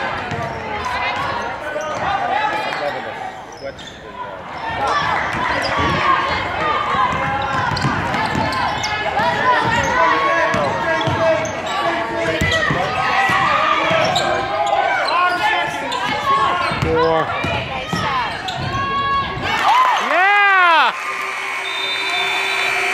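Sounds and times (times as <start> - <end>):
crowd voices and shouts: 0.0 - 22.9
basketball bouncing on hardwood floor: 7.1 - 8.5.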